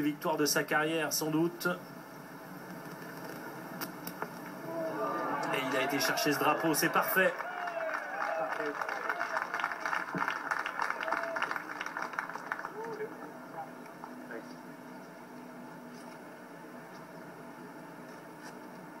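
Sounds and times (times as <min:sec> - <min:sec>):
crowd applauding: 0:04.7 - 0:14.1.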